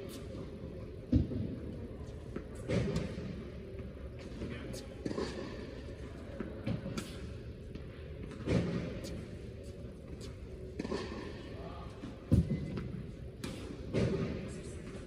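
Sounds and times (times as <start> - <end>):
tennis balls struck and bouncing: 0.1 - 15.0.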